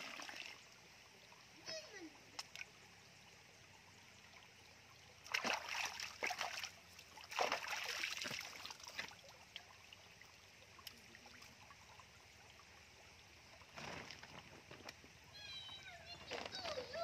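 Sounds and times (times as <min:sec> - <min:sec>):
water splash: 0:05.2 - 0:09.3
person's voice: 0:15.5 - 0:17.0.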